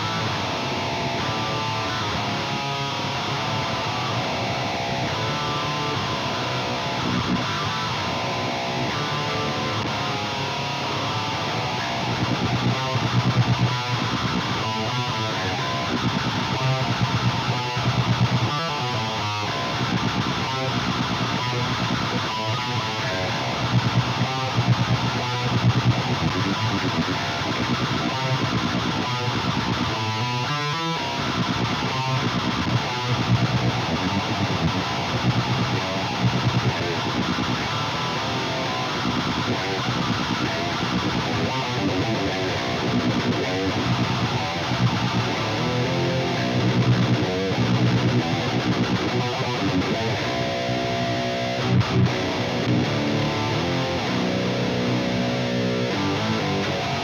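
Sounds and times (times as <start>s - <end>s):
distorted electric guitar riffing: 0.0s - 57.0s.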